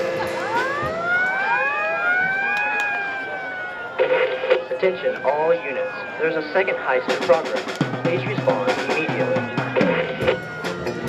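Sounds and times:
police sirens wailing: 0:00.0 - 0:11.0.

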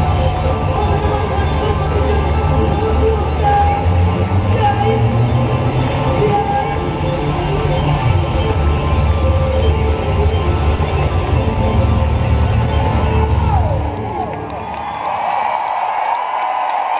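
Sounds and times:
crowd noise: 0:00.0 - 0:16.9.

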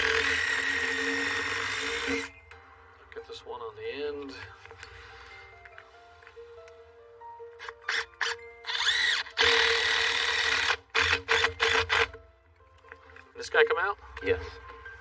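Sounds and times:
cordless drill driving bolt into wood: 0:00.0 - 0:02.3, 0:07.6 - 0:12.2.

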